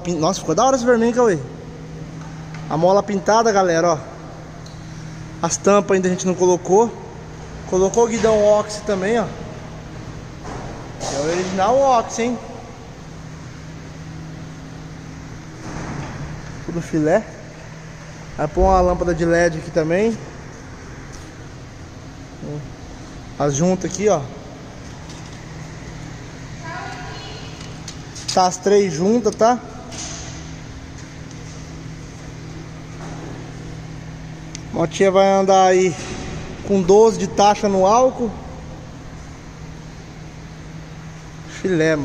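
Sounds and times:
low machine hum: 0:00.0 - 0:42.0.

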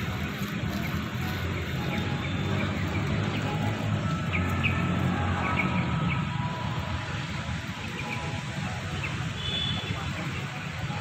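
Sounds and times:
small birds chirping: 0:00.0 - 0:10.9.

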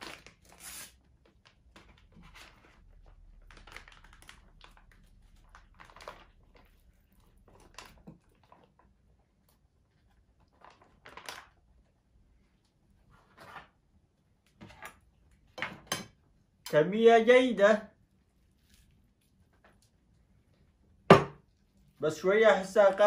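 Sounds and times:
foil pouch crinkling: 0:00.0 - 0:08.9, 0:10.4 - 0:11.8.

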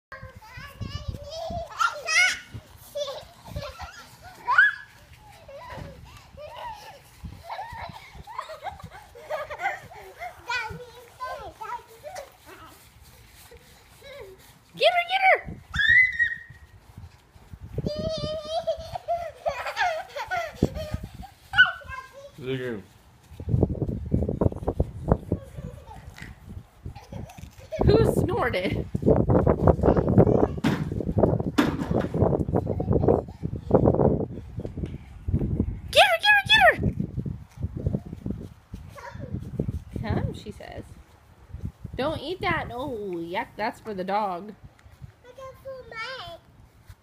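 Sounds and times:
children squealing and babbling: 0:00.2 - 0:14.7, 0:15.5 - 0:17.0, 0:17.6 - 0:22.4, 0:25.1 - 0:27.9, 0:29.6 - 0:31.3, 0:38.8 - 0:39.8.

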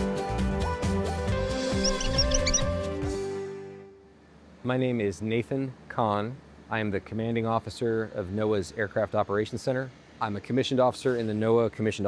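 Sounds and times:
short high squeaks: 0:01.7 - 0:02.8.

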